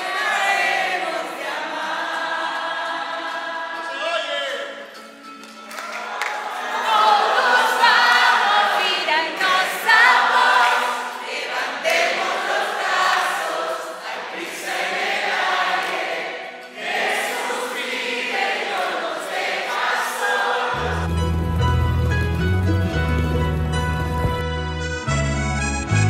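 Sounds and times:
group singing in chorus: 0.0 - 4.1, 6.1 - 21.3.

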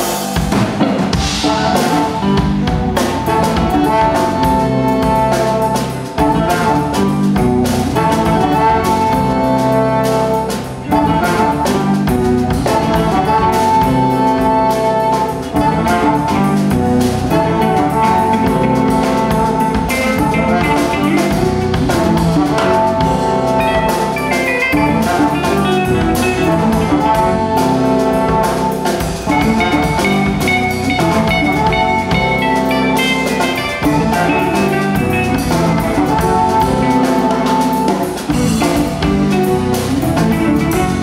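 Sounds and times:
drum kit: 0.0 - 41.0
electric guitar: 0.0 - 41.0.

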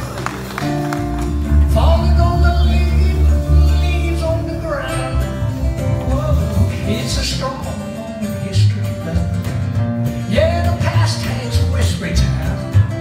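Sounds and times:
lead melody line: 0.0 - 13.0
plucked upright bass: 0.0 - 13.0
strummed acoustic guitar: 0.0 - 13.0.

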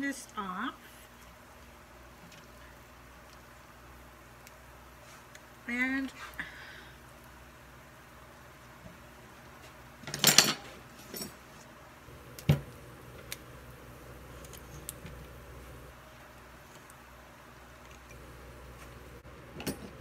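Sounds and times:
kitchen items clattering: 10.0 - 11.5.

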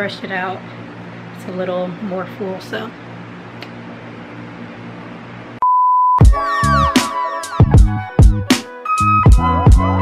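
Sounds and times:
room tone hum: 0.0 - 5.6.

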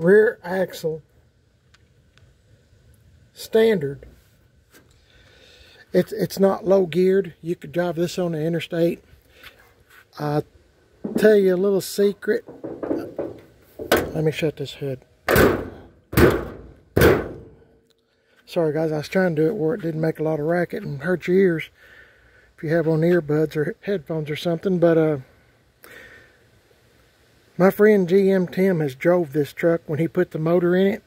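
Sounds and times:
car hood thumping shut: 12.5 - 14.2, 15.3 - 17.6.

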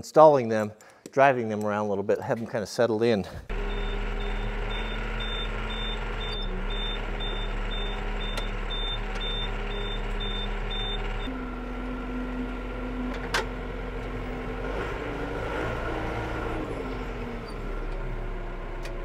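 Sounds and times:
reversing alarm beeping: 3.5 - 11.3
tractor engine running: 3.5 - 19.0.

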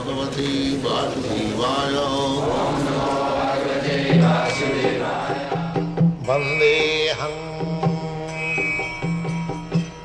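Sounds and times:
man chanting: 0.0 - 2.9, 6.2 - 8.4.

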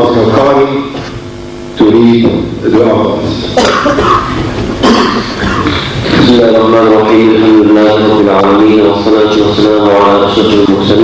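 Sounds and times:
man coughing and clearing throat: 3.5 - 6.2.

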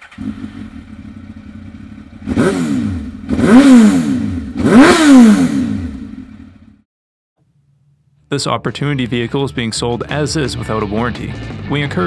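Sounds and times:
motorcycle engine idling: 0.0 - 3.5, 5.7 - 6.8.

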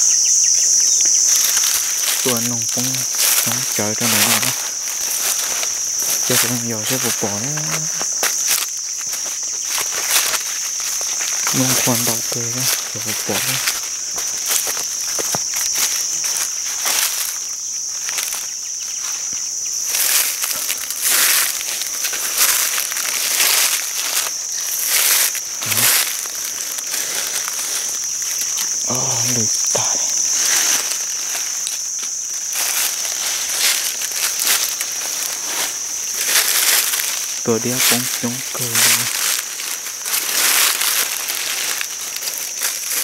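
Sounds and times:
dry leaves crunching underfoot: 0.0 - 43.0
insects droning: 0.0 - 43.0.

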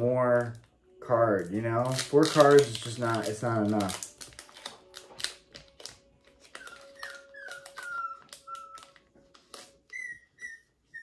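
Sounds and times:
cards and packs clicking: 1.4 - 10.1
puppy whimpering: 6.4 - 11.0.

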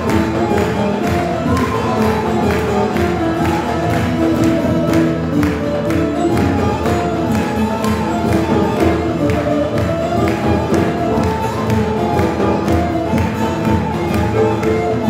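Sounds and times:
bowed fiddles: 0.0 - 15.0
plucked lutes: 0.0 - 15.0
steady percussion beat: 0.0 - 15.0.

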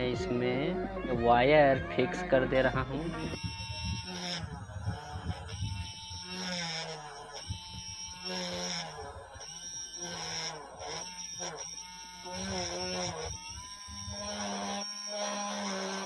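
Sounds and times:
toy motor whining: 0.0 - 16.0.

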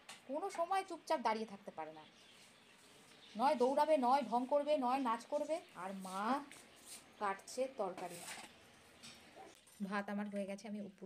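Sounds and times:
woman speaking: 0.3 - 2.1, 3.3 - 6.6, 7.2 - 8.3, 9.8 - 11.0.

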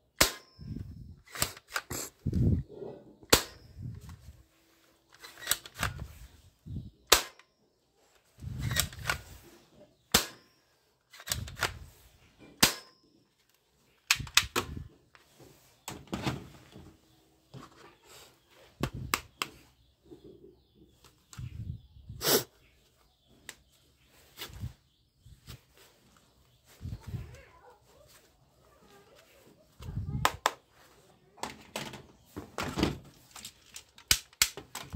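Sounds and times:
toy gun action snapping: 1.2 - 1.9, 5.1 - 6.0, 7.1 - 7.5, 8.6 - 9.3, 11.1 - 11.8, 14.0 - 14.7, 33.7 - 34.9.

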